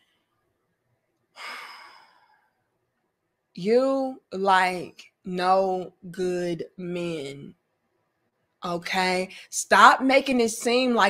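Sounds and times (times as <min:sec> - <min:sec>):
woman sighing: 0:01.4 - 0:02.5.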